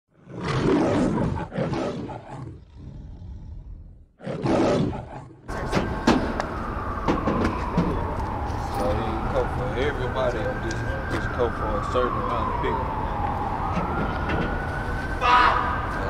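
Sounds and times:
lion roaring: 0:00.1 - 0:05.7
street noise: 0:04.5 - 0:16.0
long falling whine: 0:05.5 - 0:16.0.

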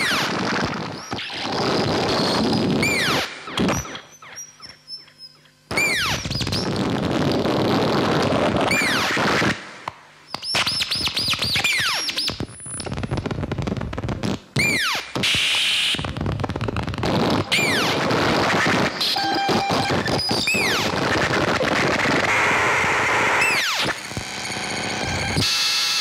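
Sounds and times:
dense electronic crackling noise: 0:00.0 - 0:26.0
hissy electronic burst: 0:14.6 - 0:24.1
sparse falling electronic blips: 0:17.1 - 0:21.8.

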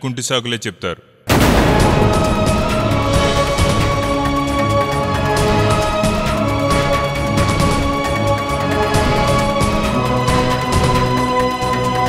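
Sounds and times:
man speaking: 0:00.0 - 0:01.1
loud boom hit: 0:01.3 - 0:06.0
dramatic background music: 0:01.3 - 0:12.0.

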